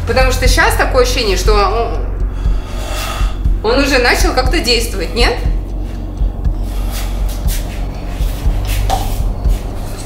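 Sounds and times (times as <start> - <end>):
background music drone: 0.0 - 10.0.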